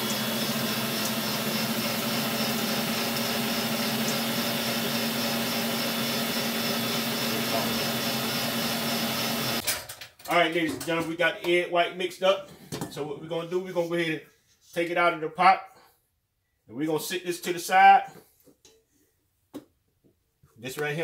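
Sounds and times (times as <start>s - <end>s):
stand mixer motor running: 0.0s - 9.6s.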